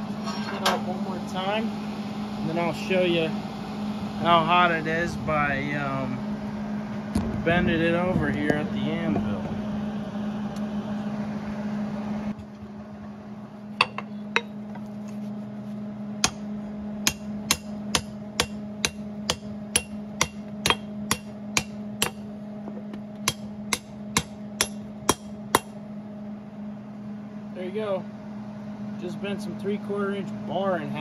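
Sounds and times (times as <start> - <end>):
steady low hum: 0.0 - 31.0
hammer striking steel on anvil: 13.8 - 14.6, 16.2 - 22.3, 23.2 - 25.8.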